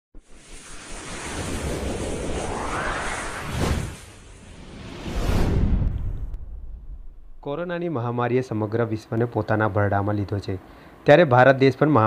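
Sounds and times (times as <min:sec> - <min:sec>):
rushing whoosh: 0:00.2 - 0:07.7.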